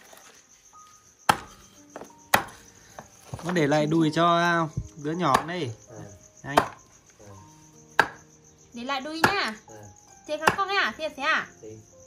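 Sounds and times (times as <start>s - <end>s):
crickets chirping: 0.0s - 12.0s
cleaver chop onto wooden board: 8.0s - 8.2s.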